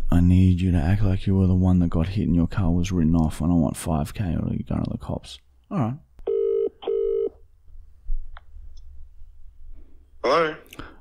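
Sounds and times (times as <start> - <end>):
telephone ringback tone: 6.3 - 7.3.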